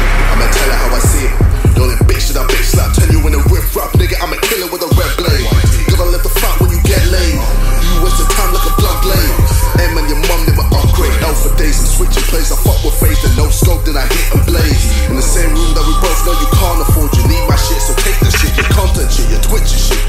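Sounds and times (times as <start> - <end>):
rapping over a heavy bass beat: 0.0 - 20.0.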